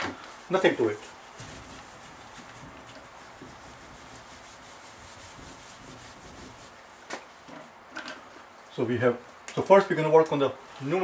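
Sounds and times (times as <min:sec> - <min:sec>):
eraser rubbing on whiteboard: 0:00.6 - 0:07.2.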